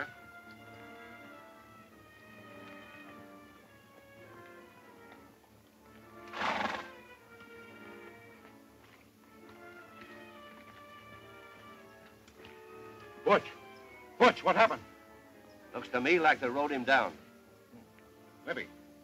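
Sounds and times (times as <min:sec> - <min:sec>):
film score music: 0:00.0 - 0:19.0
horse whinnying: 0:06.2 - 0:07.0.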